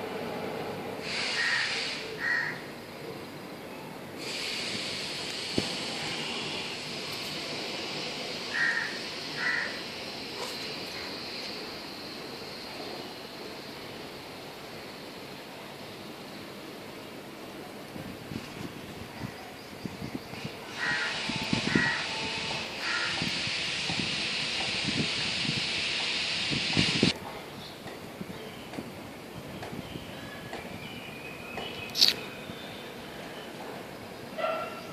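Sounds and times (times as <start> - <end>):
steady high hiss: 0.0 - 34.9
bird short calls: 31.9 - 32.3.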